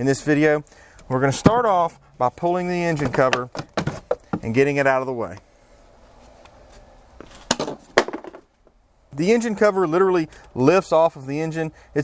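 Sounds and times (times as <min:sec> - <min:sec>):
plastic cover knocking down: 0:03.0 - 0:04.5, 0:07.4 - 0:08.5.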